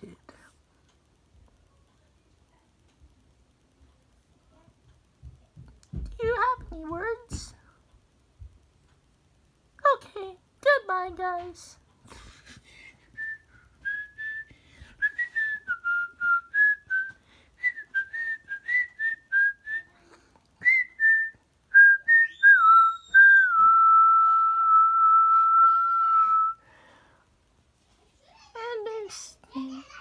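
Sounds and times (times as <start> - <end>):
person whistling a tune: 13.1 - 20.0, 20.6 - 26.6.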